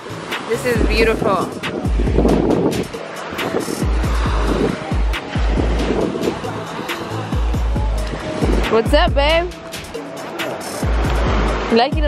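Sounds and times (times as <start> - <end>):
small waves washing on beach: 0.0 - 12.0
wind buffeting microphone: 0.0 - 12.0.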